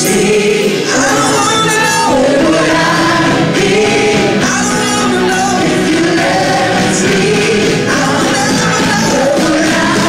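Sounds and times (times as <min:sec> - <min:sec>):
full band playing: 0:00.0 - 0:10.0
voices singing gospel: 0:00.0 - 0:10.0.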